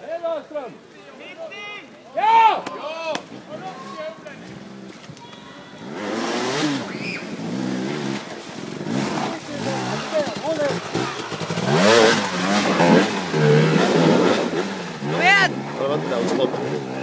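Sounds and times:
muddy water splashing: 0:03.2 - 0:17.0
motorcycle engine revving: 0:05.8 - 0:17.0.

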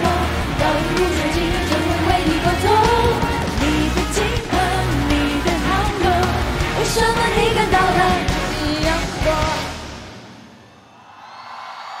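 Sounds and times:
live pop concert music: 0:00.0 - 0:10.7.

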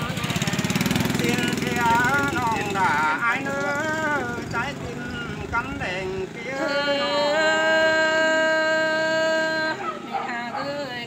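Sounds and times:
person singing folk chant: 0:00.0 - 0:11.0
small engine running: 0:00.0 - 0:11.0.

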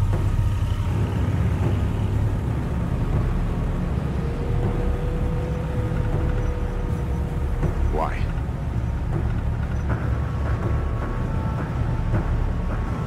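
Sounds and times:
car engine rumble: 0:00.0 - 0:13.0
road noise: 0:00.0 - 0:13.0.

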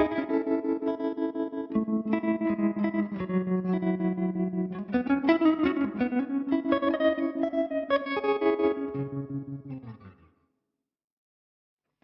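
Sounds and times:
electric guitar with tremolo: 0:00.0 - 0:10.3.

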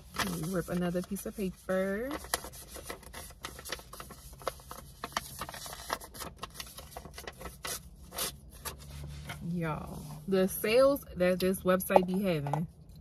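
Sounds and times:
paper tearing and rustling: 0:00.0 - 0:09.5.

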